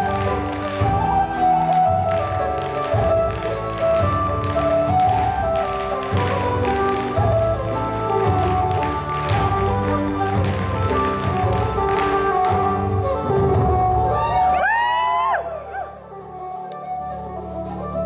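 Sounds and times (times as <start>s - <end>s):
shoes tapping on stage floor: 0.0s - 14.5s
dance music: 0.0s - 18.0s.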